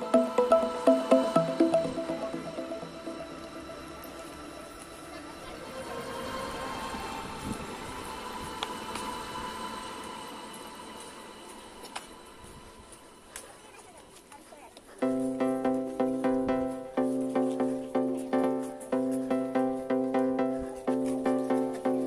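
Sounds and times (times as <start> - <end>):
background music: 0.0 - 14.0, 15.0 - 22.0
outdoor background noise: 0.0 - 22.0
people chattering: 0.0 - 22.0.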